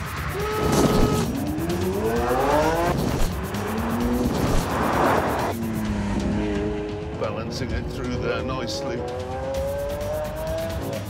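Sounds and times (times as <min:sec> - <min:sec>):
background music with ticking beat: 0:00.0 - 0:11.0
car engine accelerating: 0:00.0 - 0:11.0.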